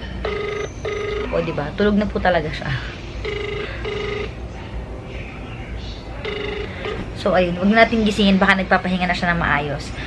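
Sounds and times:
phone ringback tone: 0:00.0 - 0:01.6, 0:03.2 - 0:04.4, 0:06.2 - 0:07.1.

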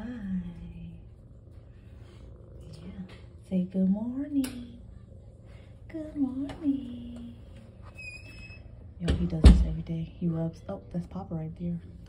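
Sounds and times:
kitten purring: 0:00.0 - 0:07.6.

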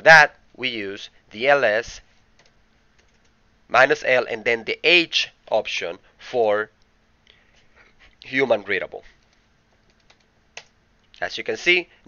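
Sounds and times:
computer keyboard typing: 0:02.3 - 0:03.4, 0:09.2 - 0:10.7.

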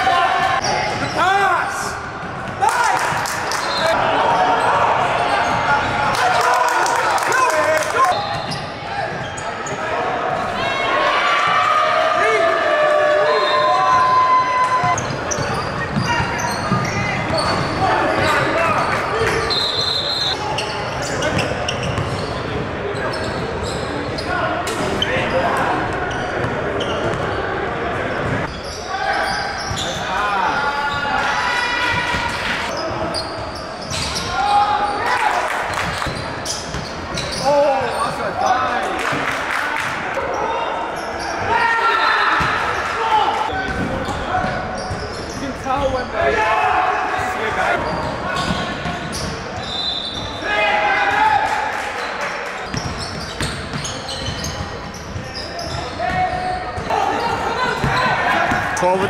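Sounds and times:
players' voices: 0:00.0 - 0:59.0
sneaker squeaks: 0:00.6 - 0:01.3, 0:03.5 - 0:06.0, 0:08.0 - 0:09.9, 0:13.4 - 0:27.4, 0:28.1 - 0:35.1, 0:35.7 - 0:38.8, 0:43.5 - 0:46.1, 0:47.6 - 0:50.6, 0:52.6 - 0:59.0.

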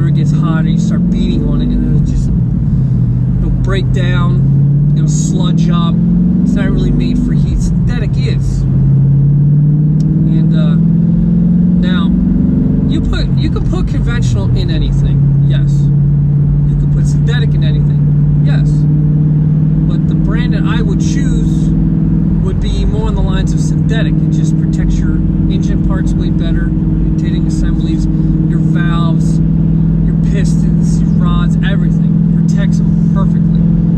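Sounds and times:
man talking: 0:00.0 - 0:02.3, 0:03.4 - 0:08.6, 0:10.2 - 0:10.9, 0:11.8 - 0:12.2, 0:12.9 - 0:16.0, 0:16.7 - 0:18.9, 0:19.8 - 0:21.7, 0:22.4 - 0:33.7
car engine from inside cabin: 0:00.0 - 0:33.9.

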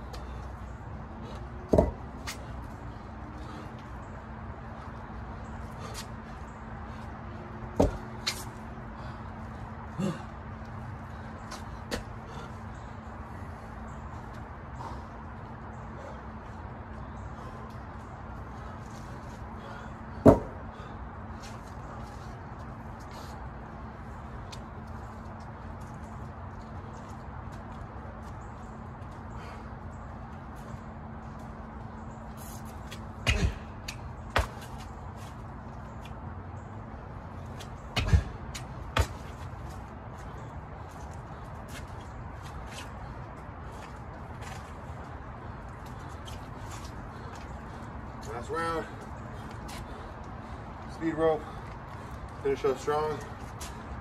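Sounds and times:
steady low hum: 0:00.0 - 0:54.0
sharp thumps of jumping on tyres: 0:01.7 - 0:02.4, 0:07.7 - 0:08.4, 0:20.2 - 0:20.6, 0:33.2 - 0:34.8, 0:37.9 - 0:39.4.

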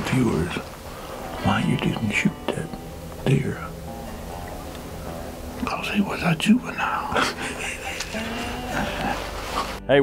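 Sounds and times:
soft background music: 0:00.0 - 0:10.0
man whispering: 0:05.6 - 0:07.2.

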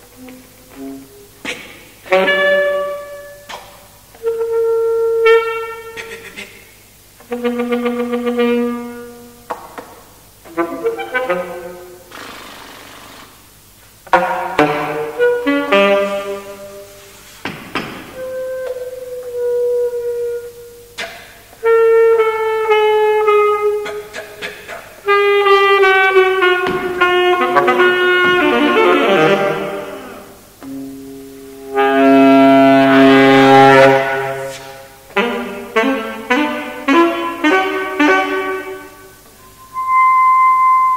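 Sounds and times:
breathy saxophone noise: 0:00.0 - 0:06.6, 0:14.5 - 0:17.4, 0:18.1 - 0:40.9
saxophone holding a low note: 0:25.1 - 0:34.6.

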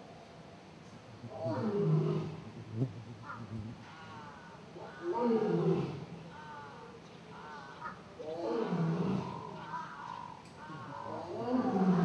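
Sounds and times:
lion roaring: 0:01.3 - 0:06.2, 0:07.6 - 0:12.0.

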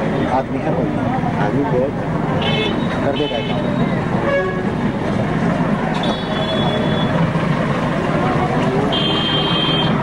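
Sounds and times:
street traffic rumble: 0:00.0 - 0:10.0
high-pitched vehicle horns: 0:02.4 - 0:04.7, 0:06.0 - 0:07.2, 0:08.9 - 0:10.0.

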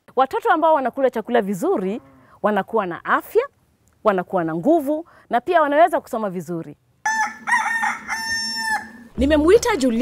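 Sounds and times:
rooster crowing: 0:07.0 - 0:09.2.

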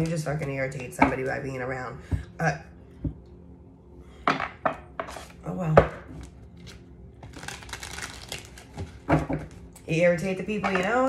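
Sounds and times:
cards being shuffled: 0:06.2 - 0:09.6.

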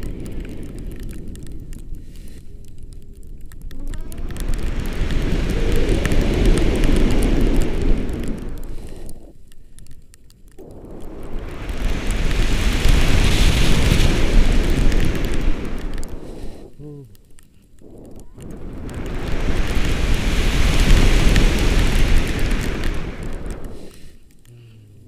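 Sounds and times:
wind rushing over microphone: 0:00.0 - 0:09.3, 0:10.6 - 0:16.8, 0:17.8 - 0:24.1.

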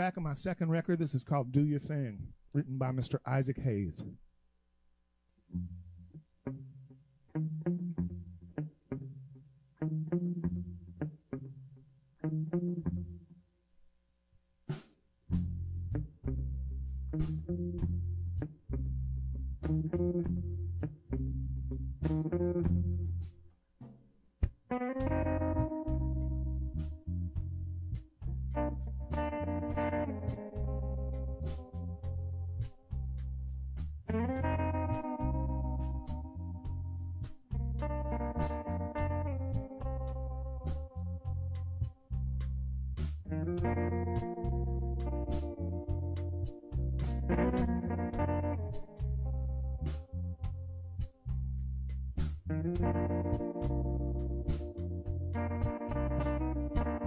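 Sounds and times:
electric guitar riff: 0:05.5 - 0:13.2, 0:15.3 - 0:23.4, 0:24.6 - 0:42.0, 0:43.2 - 0:51.1, 0:52.4 - 0:57.0
drums and bass guitar: 0:14.7 - 0:57.0
electric guitar held notes: 0:15.3 - 0:23.3, 0:24.7 - 0:33.1, 0:34.0 - 0:42.0, 0:43.3 - 0:50.7, 0:52.4 - 0:57.0.

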